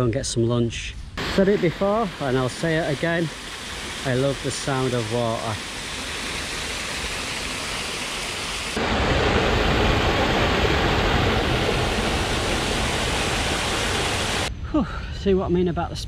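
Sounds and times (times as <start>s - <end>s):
waterfall pouring into pool: 1.2s - 14.5s
water splashing down stone ledges: 1.4s - 14.5s.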